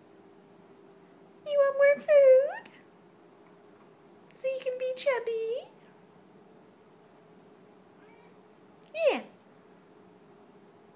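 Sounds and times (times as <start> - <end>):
faint steady hum: 0.0 - 10.9
cat meowing: 8.0 - 8.4.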